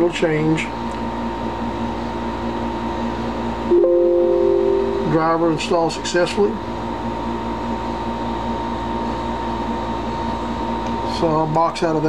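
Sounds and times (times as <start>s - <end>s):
mechanical hum and hiss: 0.0s - 12.0s
held two-note tone: 3.7s - 5.8s
faint high whine: 3.7s - 6.2s.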